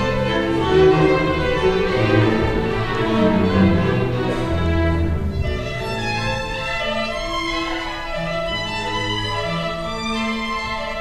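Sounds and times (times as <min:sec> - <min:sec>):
symphony orchestra strings: 0:00.0 - 0:11.0.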